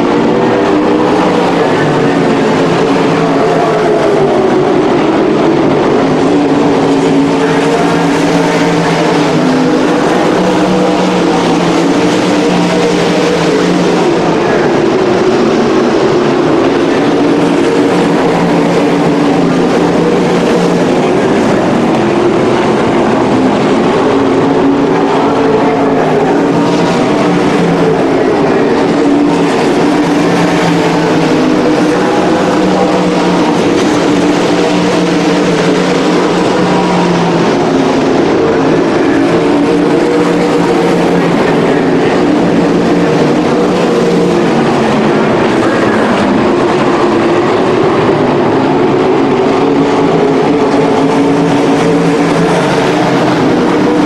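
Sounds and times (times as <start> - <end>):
racing car engines: 0.0 - 54.0.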